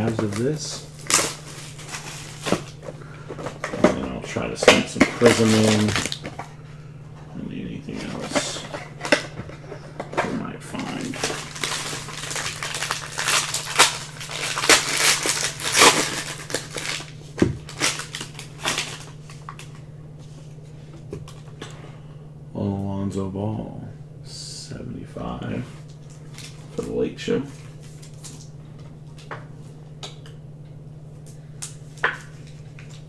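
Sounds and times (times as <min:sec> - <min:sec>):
wrapper crinkling and tearing: 0:00.0 - 0:02.8, 0:04.9 - 0:06.3, 0:10.8 - 0:19.8
steady low hum: 0:00.0 - 0:33.0.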